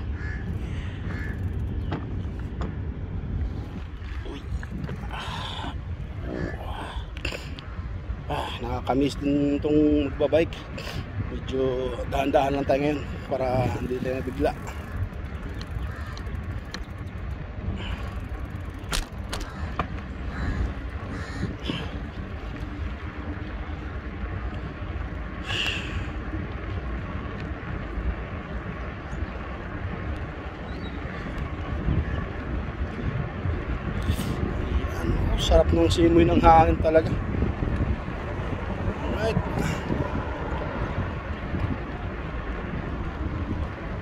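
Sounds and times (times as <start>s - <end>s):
bicycle tyres on paved road: 0.0s - 44.0s
wind rumbling on microphone: 0.0s - 44.0s.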